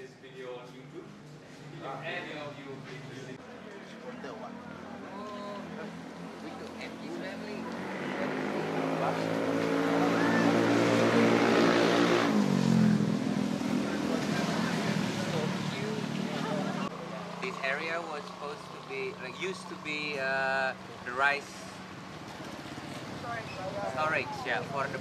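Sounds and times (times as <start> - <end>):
tyre and road noise: 2.8 - 25.0
vehicle driving past: 4.4 - 19.9.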